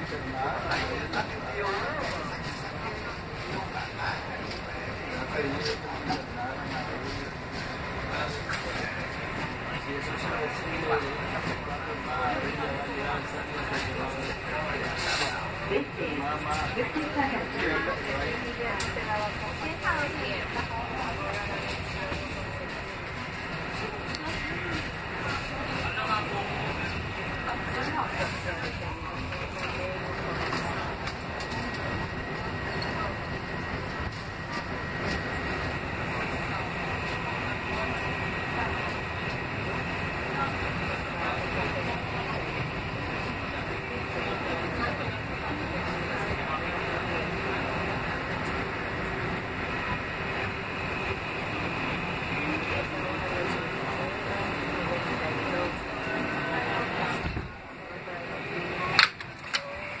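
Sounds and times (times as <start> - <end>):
train wheels rumbling on rail: 0.0 - 59.6.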